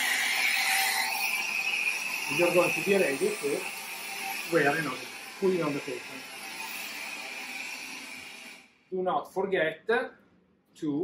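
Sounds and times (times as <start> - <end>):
oxygen hissing through tubing: 0.9 - 8.5.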